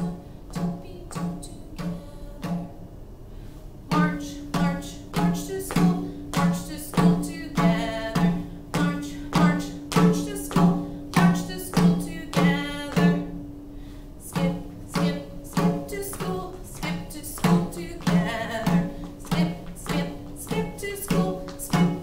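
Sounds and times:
hand drum beat: 3.9 - 13.4, 14.3 - 22.0.

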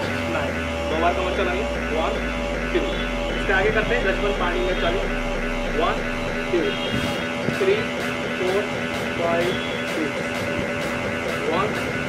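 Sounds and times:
man counting: 0.0 - 12.0
steady low hum: 0.0 - 12.0.

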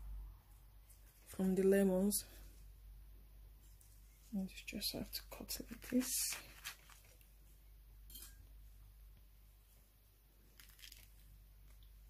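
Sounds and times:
faint clicks and rustles: 5.3 - 7.6.

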